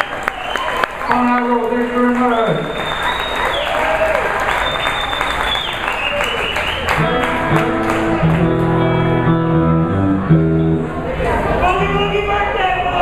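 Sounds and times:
audience applauding: 0:00.0 - 0:09.1
long high whistles: 0:02.6 - 0:07.0
electric guitar and bass playing: 0:06.9 - 0:11.9.

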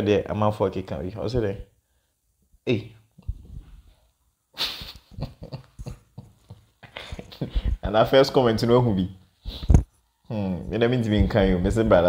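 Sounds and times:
man's breathy laughter: 0:04.6 - 0:07.8.

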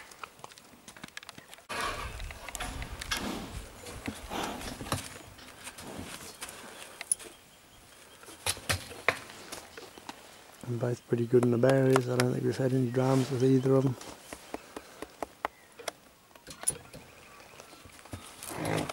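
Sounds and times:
horse hooves clopping: 0:00.0 - 0:07.4, 0:13.6 - 0:18.9.

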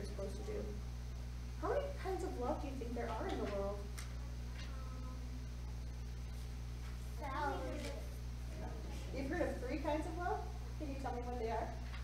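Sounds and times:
low electrical hum: 0:00.0 - 0:12.0
young child's voice: 0:04.2 - 0:05.4, 0:07.2 - 0:08.2.

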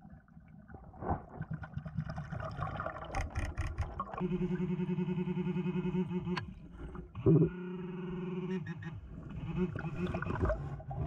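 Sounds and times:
underwater scuffling and bubbling: 0:00.0 - 0:04.3, 0:09.0 - 0:11.0.

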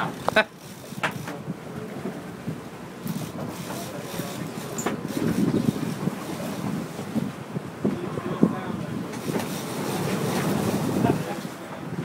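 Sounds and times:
boat engine: 0:00.0 - 0:12.0
sea around hull: 0:00.0 - 0:12.0
wind buffeting microphone: 0:00.0 - 0:12.0.

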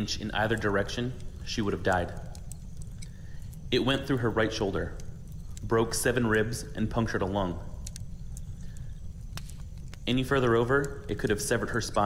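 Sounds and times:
log fire crackling: 0:00.0 - 0:12.0
low steady rumble: 0:00.0 - 0:12.0
sharp pops: 0:07.8 - 0:10.1.

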